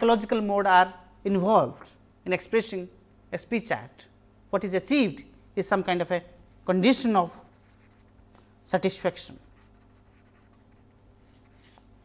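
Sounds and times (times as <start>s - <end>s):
marker scratching on paper: 7.4s - 8.2s, 9.3s - 11.8s.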